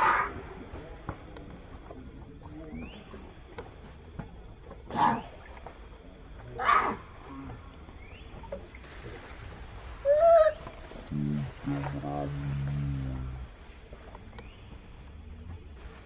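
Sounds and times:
water splashing: 0:00.0 - 0:16.0
low steady voice: 0:11.0 - 0:13.5.

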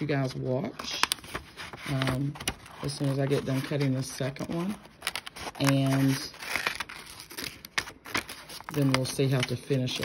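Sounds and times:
paper crinkling: 0:00.0 - 0:10.0.

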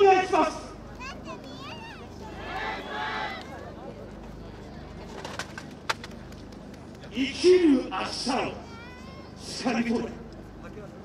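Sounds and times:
faint crowd murmuring: 0:00.0 - 0:11.0.

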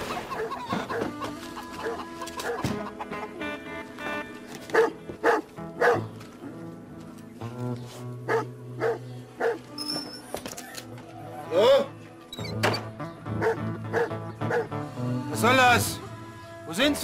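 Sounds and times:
dog barking: 0:00.3 - 0:01.0, 0:04.7 - 0:06.1, 0:08.3 - 0:09.6, 0:13.4 - 0:14.7
low music score: 0:10.9 - 0:17.0.

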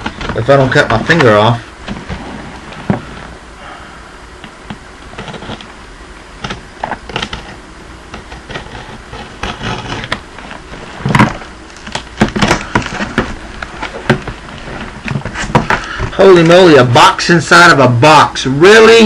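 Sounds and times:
cardboard and tape scraping: 0:04.7 - 0:05.8, 0:06.4 - 0:16.7.

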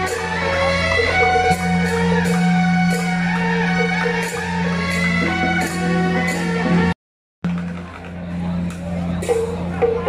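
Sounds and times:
processional music: 0:00.0 - 0:07.8
crowd noise: 0:05.2 - 0:10.0.

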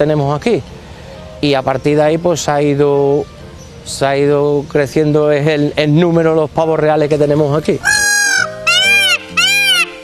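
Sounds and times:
background music: 0:07.6 - 0:10.0
peacock calling: 0:07.6 - 0:10.0.

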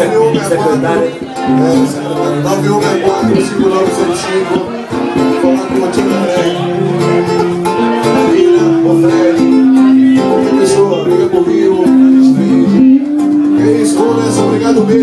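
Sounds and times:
acoustic guitar: 0:00.0 - 0:15.0
person singing long notes: 0:00.0 - 0:15.0.

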